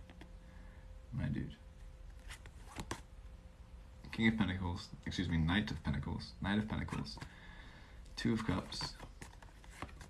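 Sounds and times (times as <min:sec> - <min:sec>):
cards being handled: 0:02.1 - 0:03.1, 0:06.5 - 0:07.4, 0:08.2 - 0:10.0.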